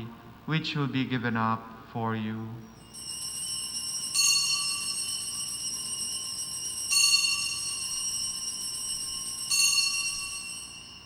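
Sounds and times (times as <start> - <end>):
high-pitched altar bells ringing: 2.6 - 11.0.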